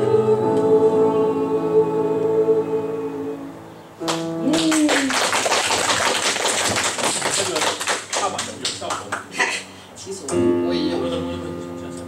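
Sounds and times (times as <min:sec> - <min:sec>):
audience applauding: 0:04.1 - 0:09.3.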